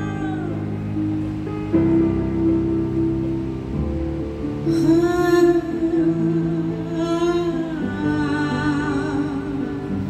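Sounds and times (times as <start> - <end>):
live band playing ballad: 0.0 - 10.0.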